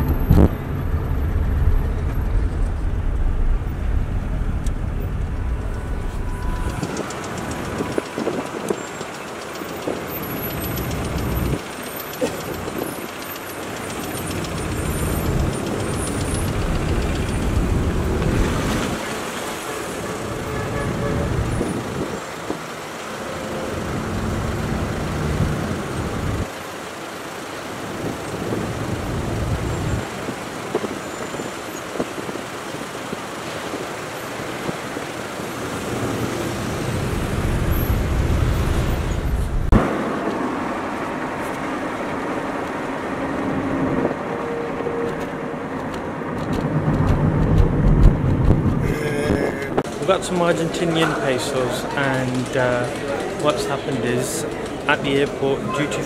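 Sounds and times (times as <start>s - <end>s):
car engines idling: 0.0s - 56.0s.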